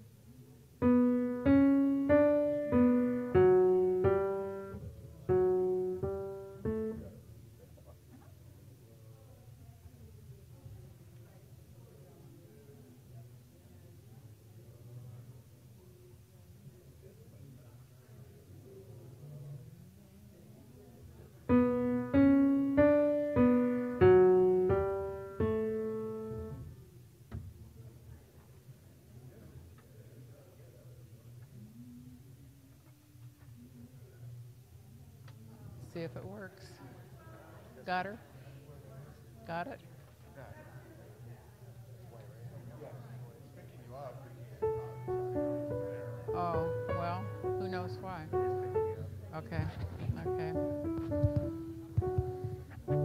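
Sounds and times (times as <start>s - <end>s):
slow piano melody: 0.8s - 7.3s, 21.5s - 26.8s, 44.6s - 49.2s, 50.2s - 53.0s.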